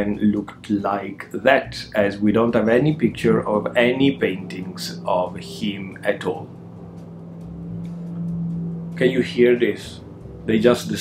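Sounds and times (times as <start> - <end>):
low rumble of machinery: 0.0 - 11.0
steady hum: 0.0 - 11.0.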